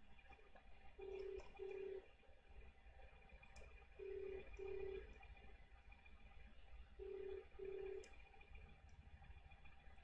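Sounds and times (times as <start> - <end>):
telephone ringback tone: 1.0 - 2.0, 4.0 - 5.0, 7.0 - 8.0.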